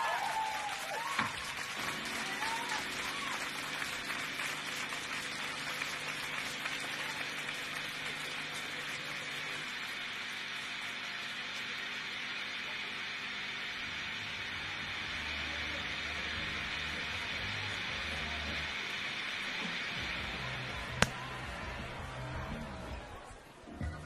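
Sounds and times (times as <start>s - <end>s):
shouts and cheers: 0.0s - 3.8s, 21.1s - 23.4s
audience applauding: 0.0s - 11.6s.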